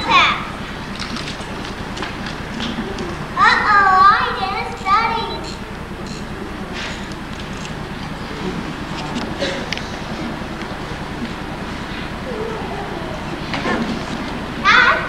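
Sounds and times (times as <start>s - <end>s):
auditorium hum and hiss: 0.0s - 15.0s
child calling out: 3.4s - 5.4s, 14.6s - 15.0s.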